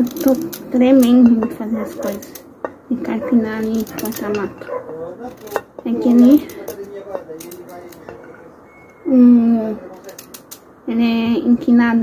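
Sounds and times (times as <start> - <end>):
handling noises: 0.0 - 10.8.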